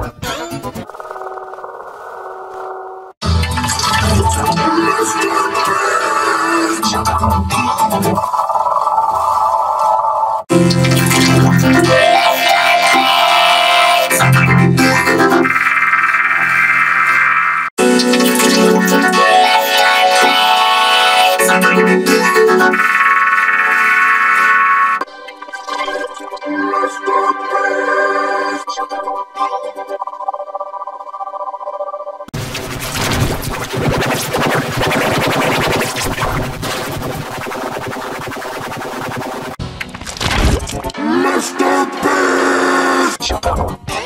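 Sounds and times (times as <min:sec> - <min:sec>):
sparse distorted tones: 0:00.0 - 0:03.2, 0:32.4 - 0:39.8
vocoded organ-like chord: 0:10.5 - 0:29.5
rapid sharp clicks and hits: 0:32.4 - 0:40.9.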